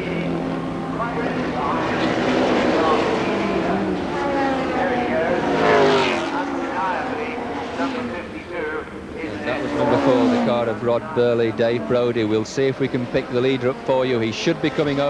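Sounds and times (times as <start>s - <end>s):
racing car engines at high revs: 0.0s - 15.0s.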